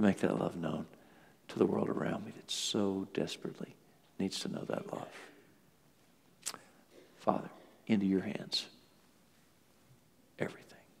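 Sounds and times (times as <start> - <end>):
man whispering: 10.4 - 11.0.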